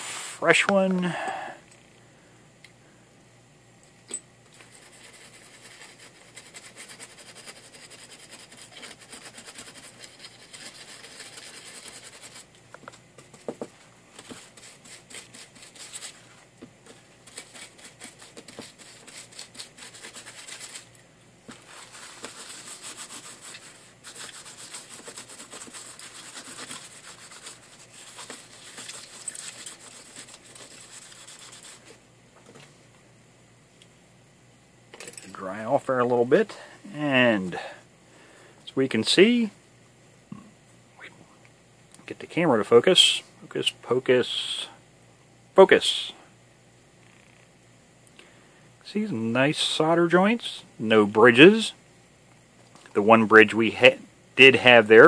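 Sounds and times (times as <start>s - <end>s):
tissue scrubbing circuit board: 21.6s - 31.9s.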